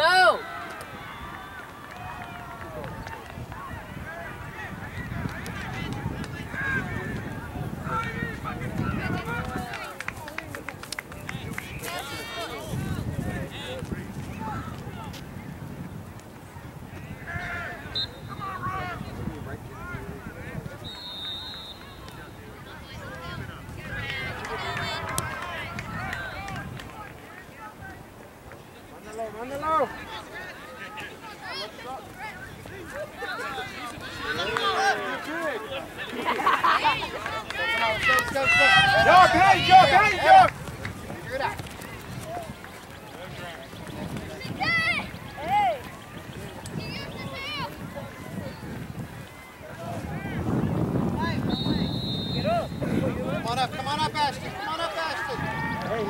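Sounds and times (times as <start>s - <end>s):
people shouting: 0.0s - 2.9s, 29.7s - 40.5s
players and spectators calling: 0.0s - 15.2s, 16.8s - 56.0s.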